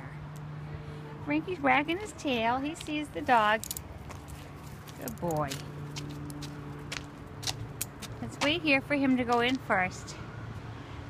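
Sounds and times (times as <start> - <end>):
footsteps on pavement: 1.5 - 10.2.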